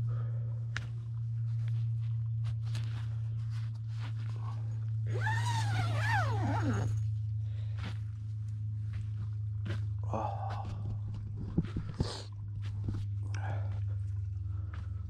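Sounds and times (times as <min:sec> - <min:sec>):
steady low hum: 0:00.0 - 0:15.0
footsteps crunching on pine needles: 0:01.4 - 0:04.7.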